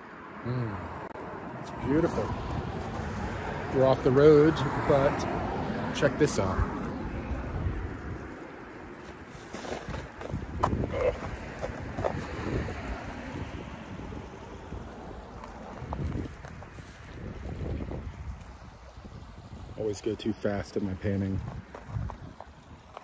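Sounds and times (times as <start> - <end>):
wind buffeting microphone: 1.8 - 23.0.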